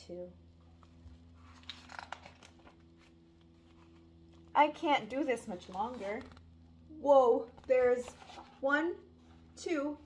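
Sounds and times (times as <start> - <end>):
faint room hum: 0.0 - 10.0
paper page rustling: 1.4 - 4.1, 5.0 - 6.5, 7.6 - 8.6.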